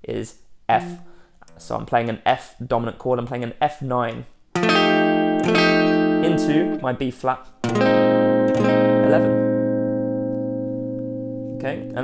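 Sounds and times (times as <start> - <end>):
clean electric guitar chord: 0.8 - 1.3, 4.6 - 6.8, 7.7 - 12.0.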